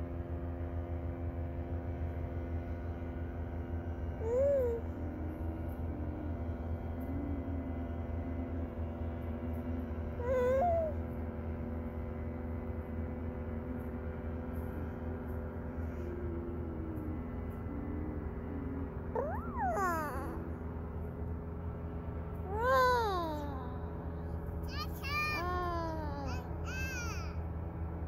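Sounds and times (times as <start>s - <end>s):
steady engine drone: 0.0s - 28.0s
child babbling squeals: 4.2s - 4.9s, 10.2s - 11.0s, 19.2s - 20.5s, 22.5s - 24.1s, 24.7s - 27.4s.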